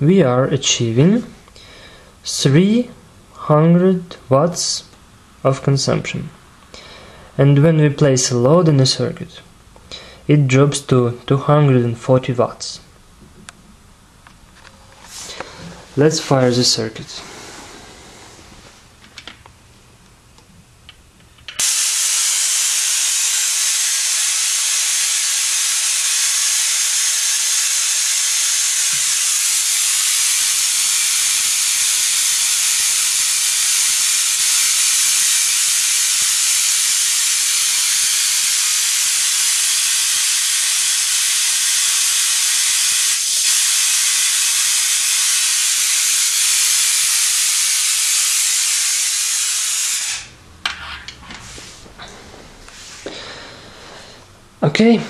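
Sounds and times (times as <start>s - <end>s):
spark gap harsh hiss: 21.6s - 50.4s.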